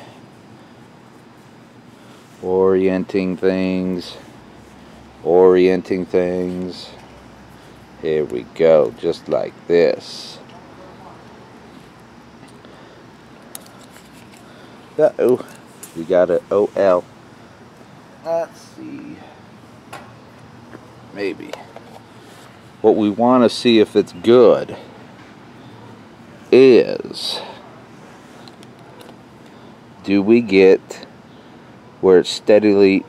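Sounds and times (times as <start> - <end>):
low background hiss: 0.0 - 33.0.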